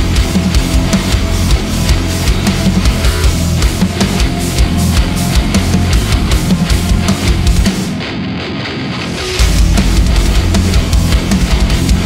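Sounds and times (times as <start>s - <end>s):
distorted guitars: 0.0s - 12.0s
drum kit: 0.0s - 12.0s.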